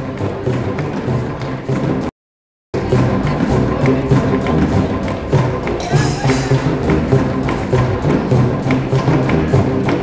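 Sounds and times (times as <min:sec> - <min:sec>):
repeating bass pattern: 0:02.8 - 0:10.0
wood block percussion knocking: 0:02.8 - 0:10.0.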